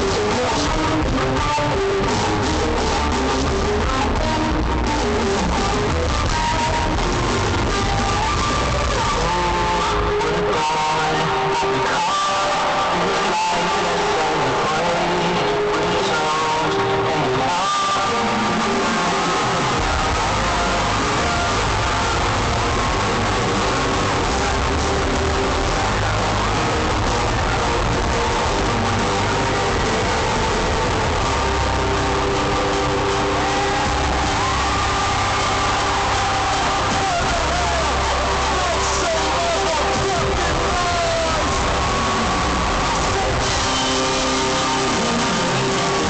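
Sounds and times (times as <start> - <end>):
loud live concert music: 0.0 - 46.0.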